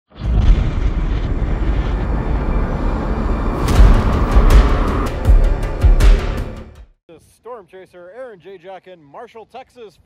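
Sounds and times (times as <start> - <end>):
deep roaring rumble: 0.1 - 6.8
sharp hits: 0.1 - 6.8.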